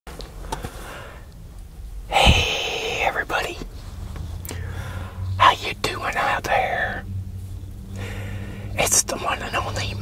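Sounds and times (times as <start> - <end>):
man whispering: 2.1 - 3.7, 5.3 - 7.0, 8.7 - 10.0.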